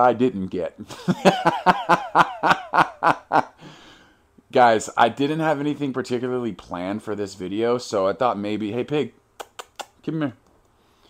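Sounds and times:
man laughing heartily: 0.8 - 3.6.

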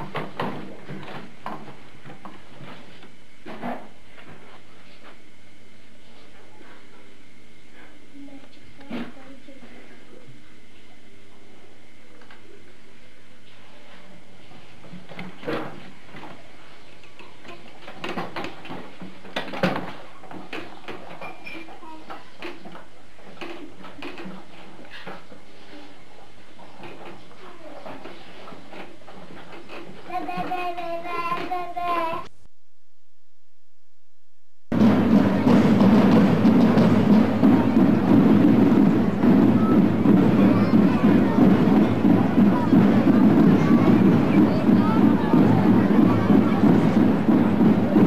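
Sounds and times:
background hum: 0.0 - 48.0
children's voices: 21.5 - 22.7, 26.9 - 28.3, 29.7 - 32.3, 35.1 - 48.0
child calling out: 30.1 - 32.3
knocks and bumps: 34.7 - 48.0.

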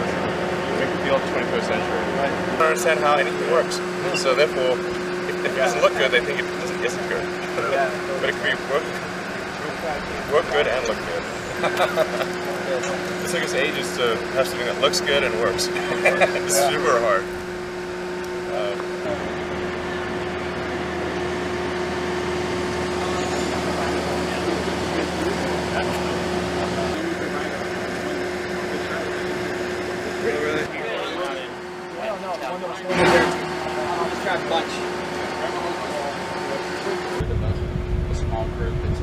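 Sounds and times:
faint voices: 0.0 - 17.5, 22.8 - 39.0
machinery hum: 0.0 - 39.0
fan-like rushing noise: 34.6 - 39.0
wind buffeting microphone: 37.2 - 39.0.

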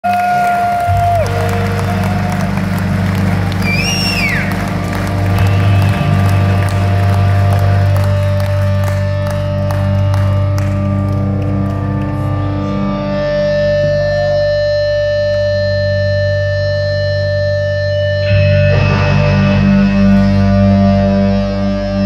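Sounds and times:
crowd cheering: 0.0 - 12.3
electric guitar and bass drone: 0.0 - 22.0
person whistling: 3.6 - 4.6.

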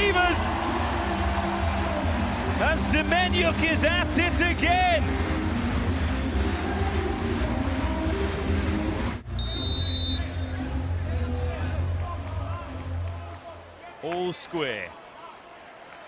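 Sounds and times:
arena crowd noise: 0.0 - 16.0
music with low bass: 0.5 - 13.0
referee's whistle: 9.3 - 10.5.

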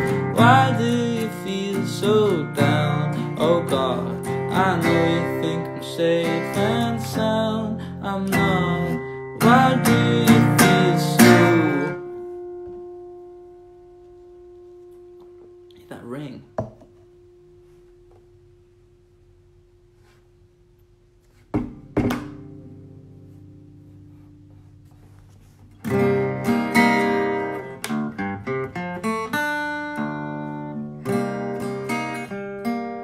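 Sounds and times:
man singing: 0.0 - 12.1
acoustic guitar strumming: 0.0 - 18.8, 21.6 - 33.0.

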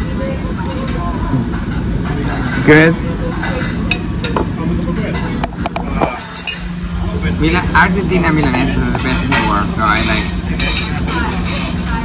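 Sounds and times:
murmur of diners talking: 0.0 - 12.0
cutlery clinking on plates: 0.7 - 4.5, 8.3 - 12.0.

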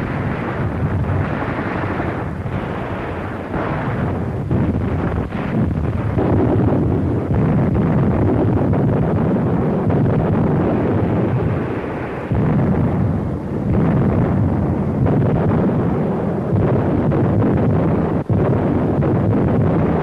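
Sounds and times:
artillery shellbursts and gunfire: 0.0 - 20.0.

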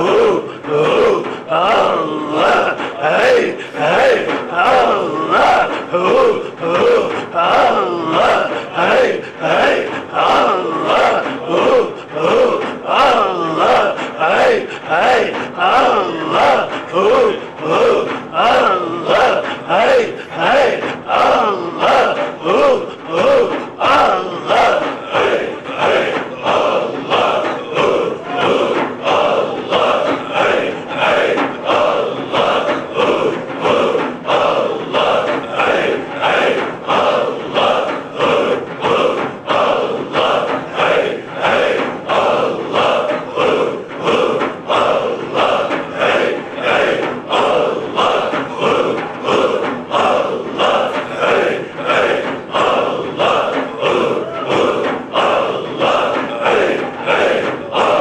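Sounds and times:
frame drums beating: 0.0 - 58.0
men chanting in rhythm: 0.0 - 58.0.

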